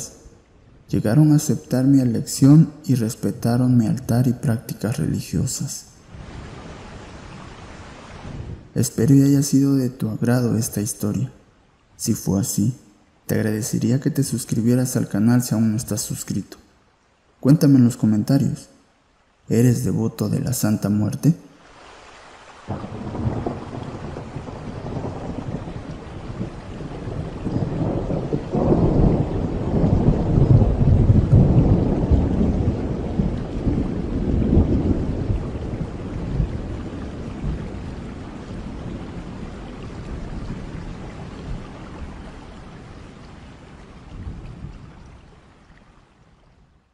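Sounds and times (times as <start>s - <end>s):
rain: 0.0s - 46.9s
thunder rumbling: 22.7s - 45.1s.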